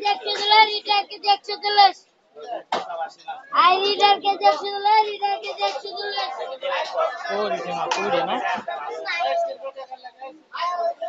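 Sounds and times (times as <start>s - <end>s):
child singing in a high voice: 0.0s - 2.0s, 3.6s - 6.4s.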